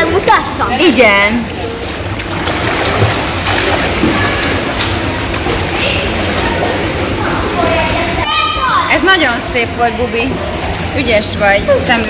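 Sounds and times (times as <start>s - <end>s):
pool hall water noise: 0.0s - 12.0s.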